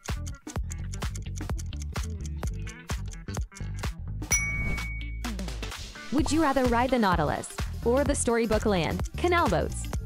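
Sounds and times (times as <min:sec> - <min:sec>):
background music with steady beat: 0:00.0 - 0:10.0
bell-like ding: 0:04.3 - 0:05.4.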